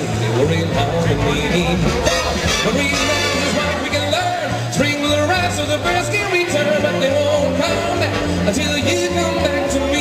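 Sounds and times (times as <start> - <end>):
big band playing: 0.0 - 10.0.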